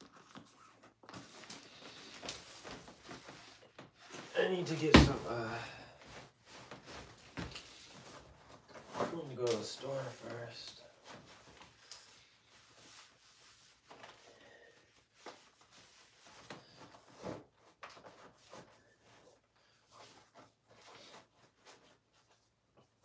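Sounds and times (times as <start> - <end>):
faint rustles and small knocks: 0.0 - 23.0.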